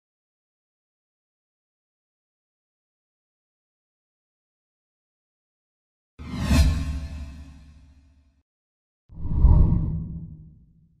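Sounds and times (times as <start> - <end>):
deep whoosh: 9.2 - 10.5.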